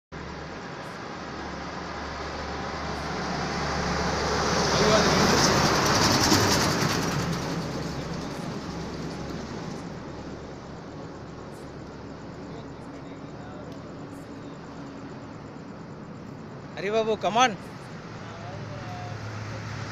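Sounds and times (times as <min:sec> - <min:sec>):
low traffic hum: 0:00.1 - 0:19.9
vehicle passing close by: 0:00.2 - 0:11.3, 0:14.0 - 0:19.9.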